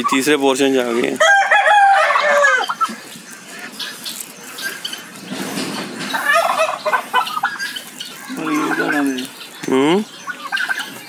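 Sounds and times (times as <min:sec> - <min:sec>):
poultry calling: 0:00.0 - 0:11.0.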